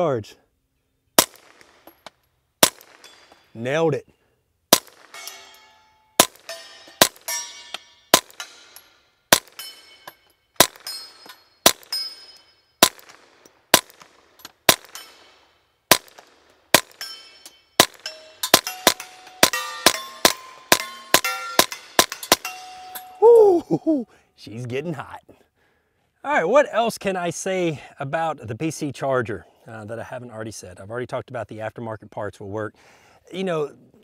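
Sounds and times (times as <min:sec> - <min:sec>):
suppressed gunshots: 0:01.2 - 0:02.0, 0:02.6 - 0:03.4, 0:04.7 - 0:05.3, 0:10.6 - 0:10.9, 0:12.8 - 0:17.0, 0:17.8 - 0:22.5
steel targets ringing: 0:05.0 - 0:12.8, 0:16.9 - 0:23.2.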